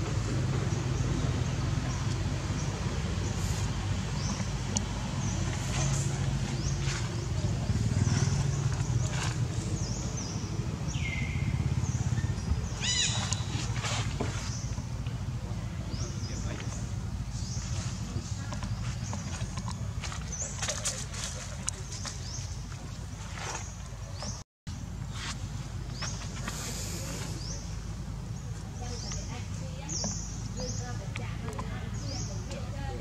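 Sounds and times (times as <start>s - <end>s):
low motor hum: 0.0s - 33.0s
low steady rumble: 0.0s - 33.0s.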